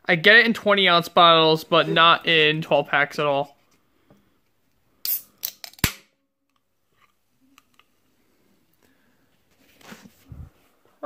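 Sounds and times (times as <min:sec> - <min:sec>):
can tab popping crack: 0:05.0 - 0:06.1
faint handling sounds: 0:06.6 - 0:11.0.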